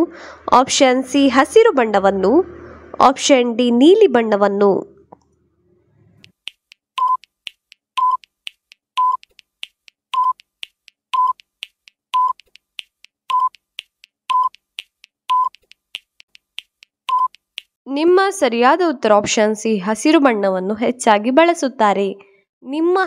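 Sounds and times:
faint ticking clicks: 6.1s - 17.8s
countdown timer beeps: 6.2s - 14.7s, 15.3s - 15.6s, 17.1s - 17.5s.

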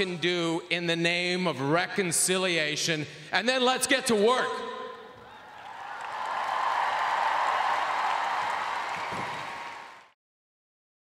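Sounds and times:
audience applause: 5.5s - 10.2s.

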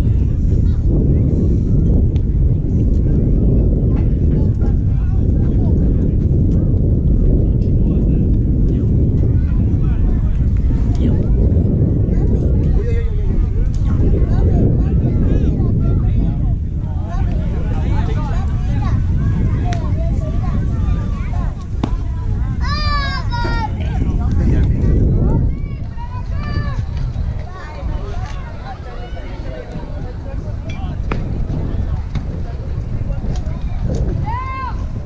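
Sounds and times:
wind rumbling on microphone: 0.0s - 35.0s
faint voices calling out: 9.2s - 35.0s.

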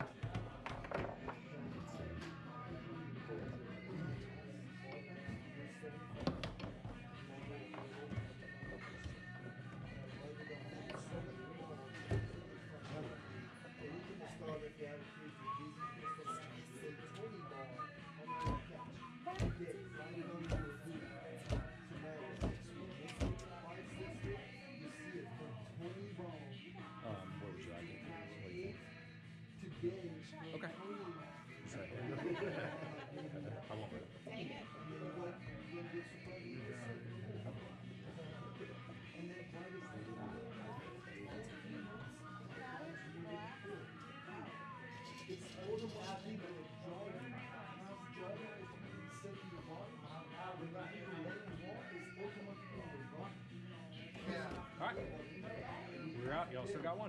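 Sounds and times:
background music: 0.0s - 57.0s
room chatter: 0.0s - 57.0s.

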